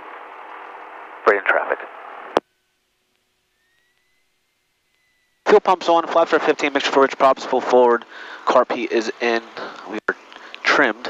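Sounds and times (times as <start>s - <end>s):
radio hiss: 1.2s - 2.4s.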